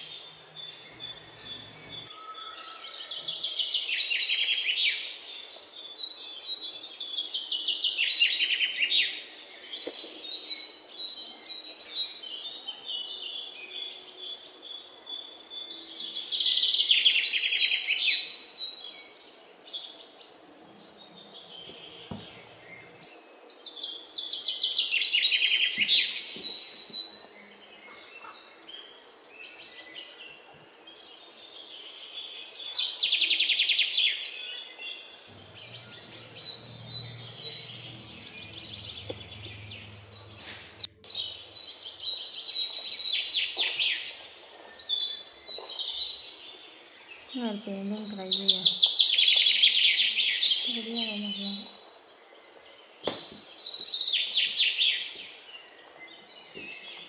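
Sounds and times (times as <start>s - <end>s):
soft bird chirping: 0.0s - 3.8s, 35.1s - 49.6s.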